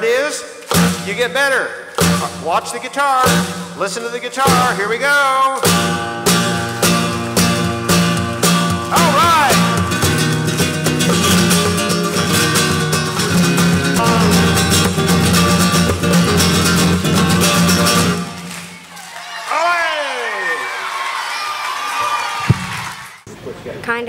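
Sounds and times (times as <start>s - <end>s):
flamenco guitar strumming: 0.5s - 18.8s
long shouted call: 8.8s - 9.9s, 19.0s - 22.4s.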